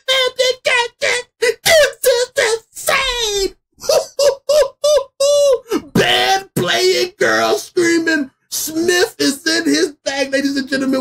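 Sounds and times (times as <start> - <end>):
man exclaiming excitedly: 0.0 - 11.0.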